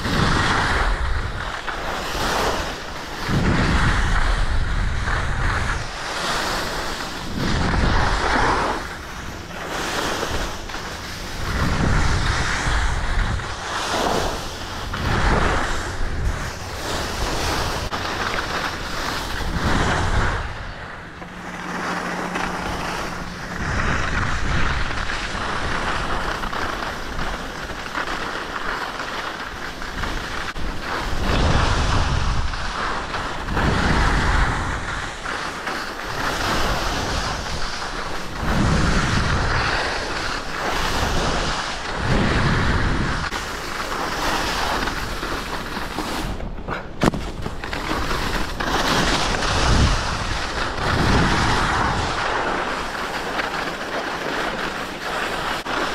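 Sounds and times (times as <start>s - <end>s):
skis scraping over snow: 0.0s - 55.9s
wind rushing over microphone: 0.0s - 55.9s.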